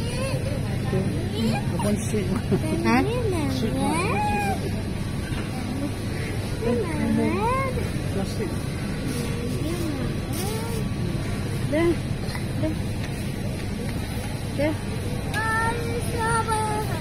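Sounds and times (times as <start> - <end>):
shop background hum: 0.0 - 17.0
child whining: 3.8 - 4.7.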